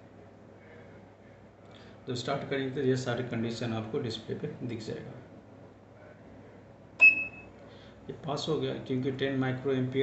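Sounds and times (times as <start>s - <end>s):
short high-pitched beep: 7.0s - 7.5s.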